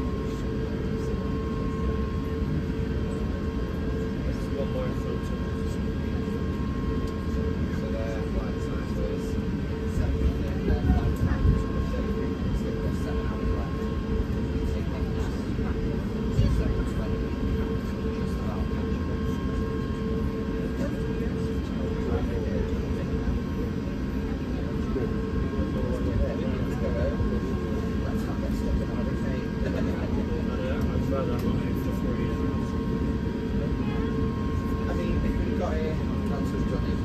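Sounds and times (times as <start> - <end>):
low engine rumble in cabin: 0.0 - 37.0.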